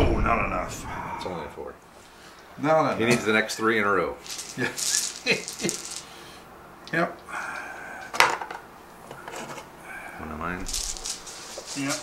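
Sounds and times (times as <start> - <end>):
dice clacking on table: 4.3 - 6.0.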